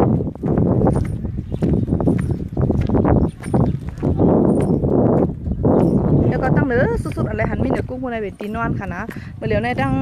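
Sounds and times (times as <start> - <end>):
footsteps on gravel: 0.0 - 10.0
rumbling microphone noise: 0.0 - 10.0.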